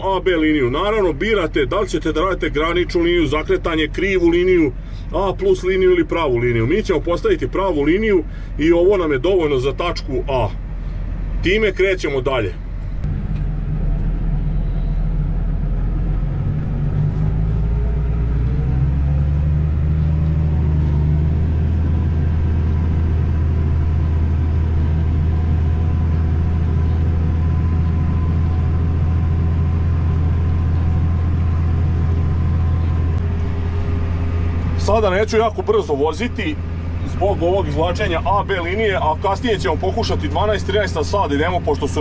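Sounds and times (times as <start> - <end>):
tractor diesel engine under load: 0.0 - 42.0.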